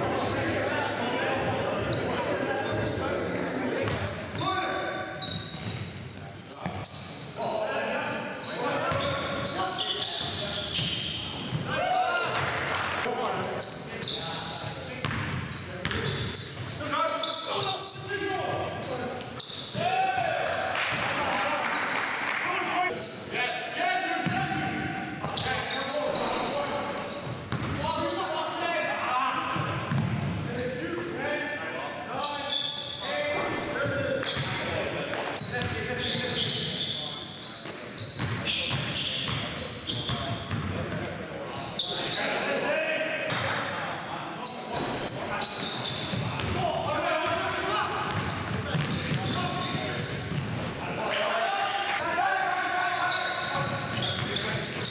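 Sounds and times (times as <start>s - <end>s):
basketball bouncing on hardwood: 29.9s - 30.3s.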